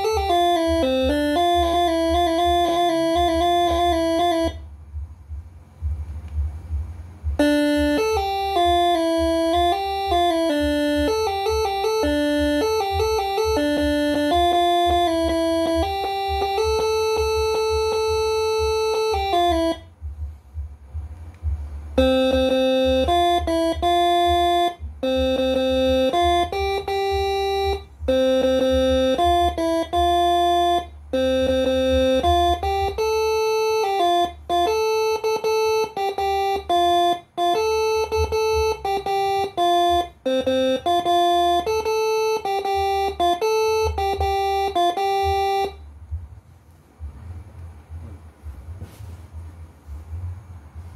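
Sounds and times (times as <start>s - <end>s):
bus air horns playing a melody: 0.0s - 4.7s, 7.4s - 20.4s, 21.9s - 45.9s.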